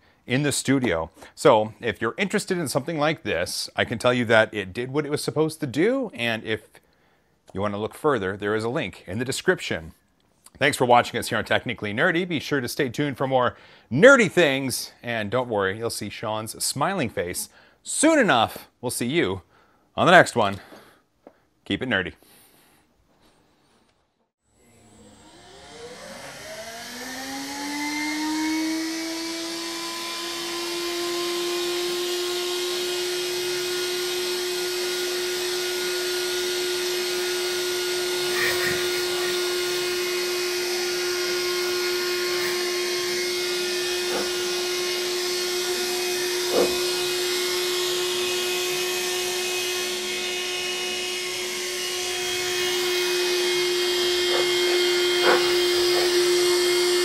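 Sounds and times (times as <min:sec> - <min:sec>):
handheld vacuum motor whine: 0:24.5 - 0:57.0.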